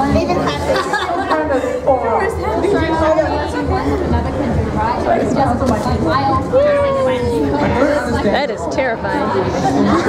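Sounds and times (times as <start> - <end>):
people chattering and calling out: 0.0 - 10.0.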